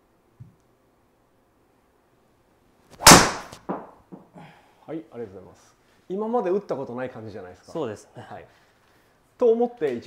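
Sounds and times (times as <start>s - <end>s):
golf club striking ball: 3.0s - 3.9s.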